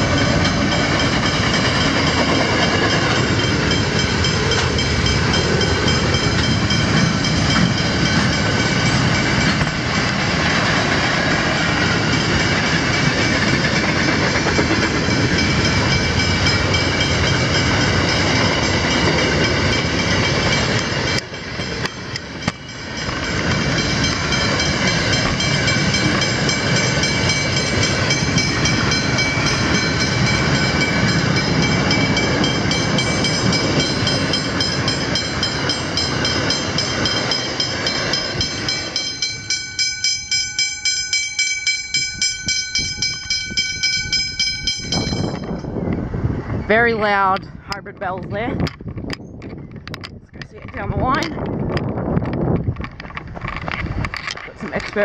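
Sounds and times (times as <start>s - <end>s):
level crossing bells ringing: 0.0s - 9.6s, 14.7s - 45.7s
train wagons clattering on rails: 0.0s - 55.0s.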